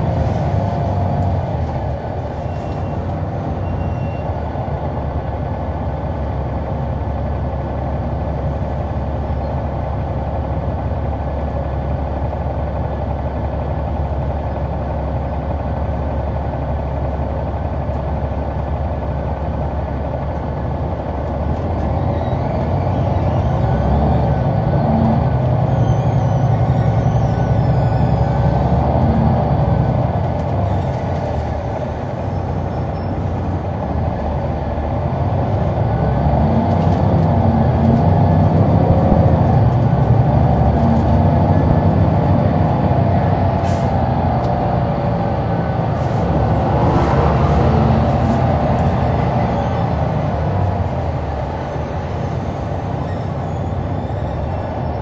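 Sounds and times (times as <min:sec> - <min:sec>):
bus diesel engine accelerating: 0:00.0 - 0:55.0.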